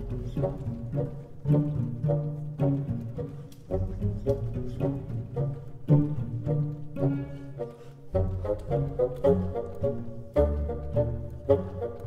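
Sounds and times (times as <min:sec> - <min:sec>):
low strings plucked rhythmic music: 0:00.0 - 0:12.0.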